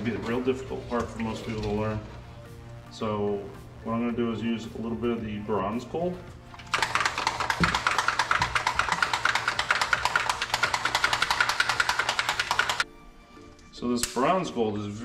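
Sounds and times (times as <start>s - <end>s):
paint bottle rattling when shaken: 6.5s - 12.8s.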